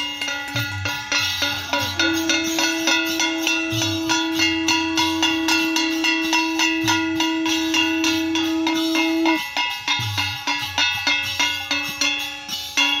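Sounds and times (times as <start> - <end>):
long held note: 0.0 - 9.6
clanging metal: 0.0 - 13.0
drum beating: 0.0 - 13.0.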